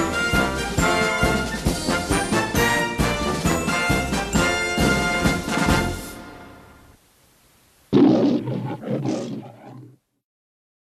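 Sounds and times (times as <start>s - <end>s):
loud animal roar: 7.9s - 10.0s.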